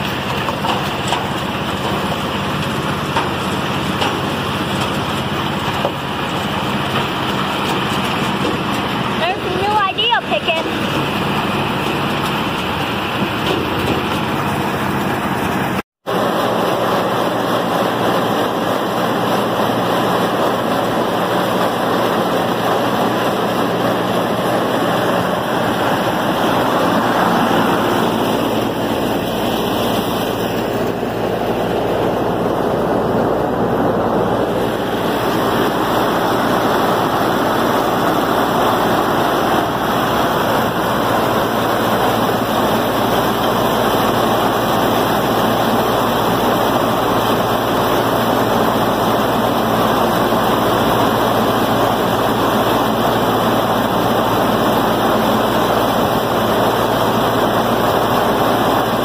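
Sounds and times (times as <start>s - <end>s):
tractor and corn picker running: 0.0s - 59.0s
tractor driving chain elevator: 0.0s - 59.0s.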